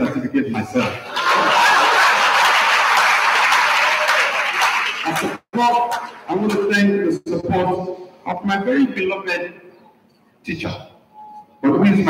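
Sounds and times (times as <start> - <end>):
audience applauding: 1.2 - 6.2.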